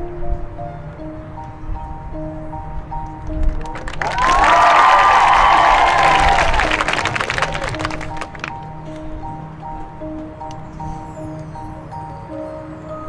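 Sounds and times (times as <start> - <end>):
crowd cheering and clapping: 3.5 - 8.6.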